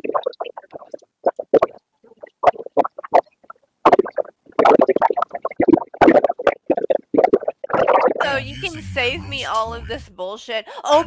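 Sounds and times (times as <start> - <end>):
muffled talking: 8.2 - 11.0.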